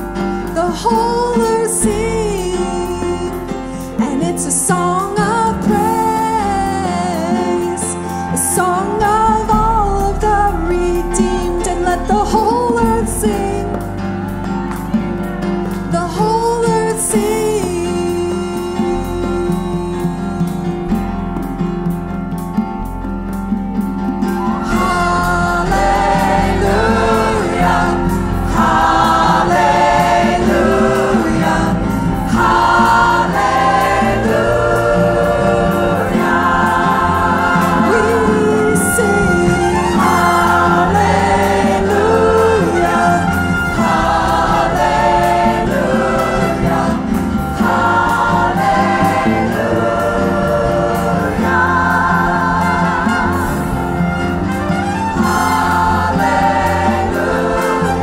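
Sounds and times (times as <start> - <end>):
woman singing lead: 0.0 - 15.1, 15.7 - 21.2, 24.3 - 58.0
piano and band accompaniment: 0.0 - 58.0
choir singing: 0.6 - 15.0, 24.2 - 58.0.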